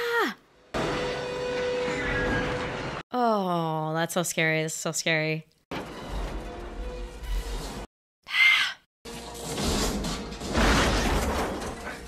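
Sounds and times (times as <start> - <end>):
heavy rumbling bus crash: 9.3 - 12.0.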